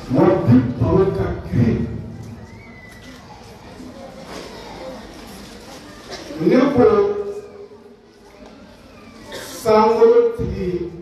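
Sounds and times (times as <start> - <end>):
man chanting through a microphone: 0.0 - 2.2, 9.6 - 11.0.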